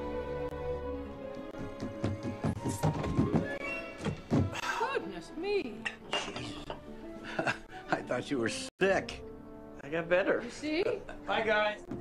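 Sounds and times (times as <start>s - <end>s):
film music: 0.0s - 12.0s
footsteps thumping down wooden stairs: 1.6s - 4.6s.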